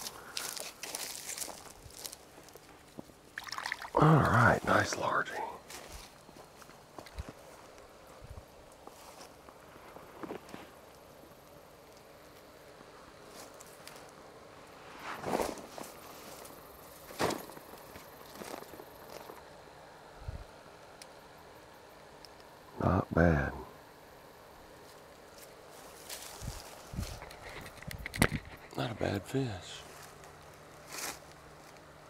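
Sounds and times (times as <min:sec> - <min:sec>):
footsteps through dry grass: 0:00.0 - 0:03.1, 0:05.6 - 0:10.8, 0:15.0 - 0:19.4, 0:24.8 - 0:27.8, 0:29.8 - 0:31.9
footstep scuffs: 0:05.7 - 0:07.8, 0:24.8 - 0:27.7.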